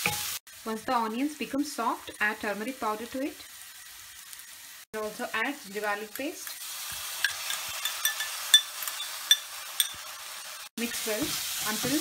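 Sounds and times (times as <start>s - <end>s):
onions sizzling in oil: 0.0s - 12.0s
bowl clinking against metal pan: 7.2s - 10.0s.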